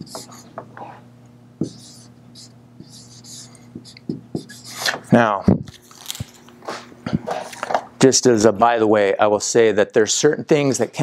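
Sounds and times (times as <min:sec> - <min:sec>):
marker scratching on whiteboard: 0:00.0 - 0:01.0, 0:01.6 - 0:05.0
low electrical hum: 0:00.0 - 0:11.0.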